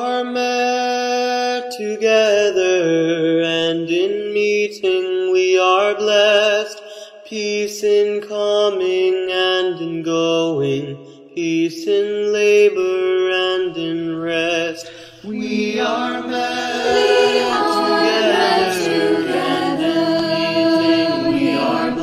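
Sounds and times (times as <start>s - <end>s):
singers breathing: 14.8s - 15.3s
choir singing sustained chords: 15.2s - 22.0s.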